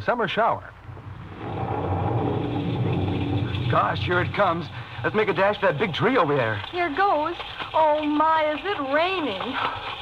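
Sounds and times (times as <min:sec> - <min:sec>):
low thunder rumble: 0:00.7 - 0:06.7.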